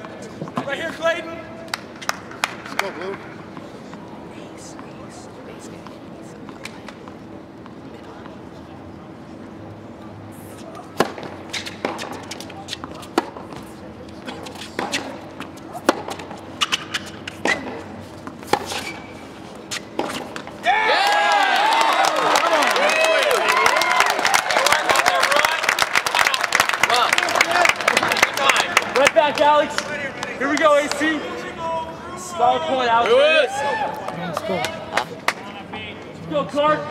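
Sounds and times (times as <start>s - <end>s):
racket striking tennis ball: 10.7s - 20.6s.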